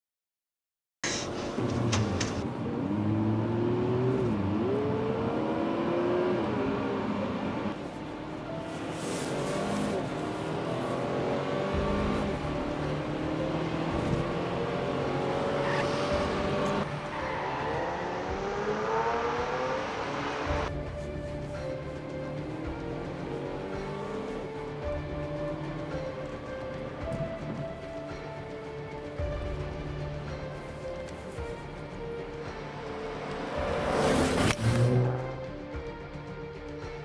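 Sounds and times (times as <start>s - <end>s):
car engine accelerating: 1.2s - 20.8s, 22.3s - 24.6s, 32.6s - 35.6s
car rushing past: 11.2s - 20.7s, 32.8s - 35.4s.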